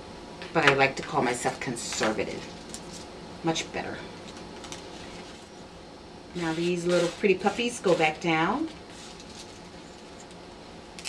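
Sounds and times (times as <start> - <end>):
metallic foil rustling: 2.4 - 3.1, 4.2 - 5.6, 6.4 - 10.4.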